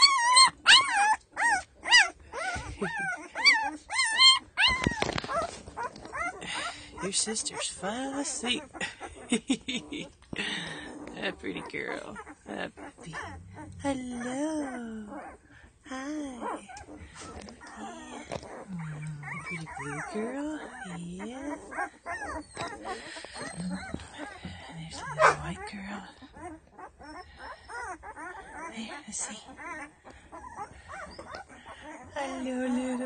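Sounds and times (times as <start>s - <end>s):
puppies whimpering: 0.0s - 33.0s.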